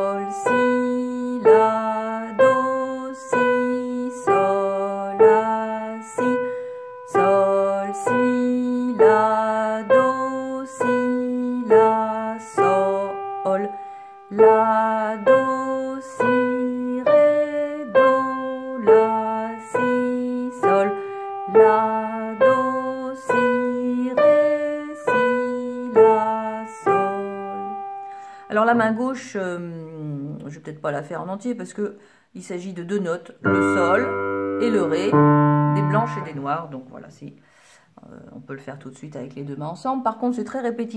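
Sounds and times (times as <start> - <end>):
slow piano melody: 0.0 - 28.6, 33.4 - 36.7.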